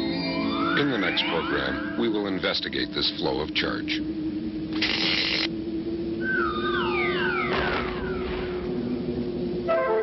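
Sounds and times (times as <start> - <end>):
descending whistles: 0.0 - 2.1, 6.2 - 8.6
low hum: 0.0 - 10.0.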